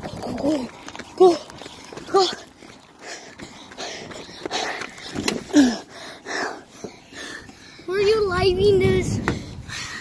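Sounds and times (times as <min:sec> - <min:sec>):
child breathing hard: 0:00.1 - 0:08.0, 0:09.2 - 0:10.0.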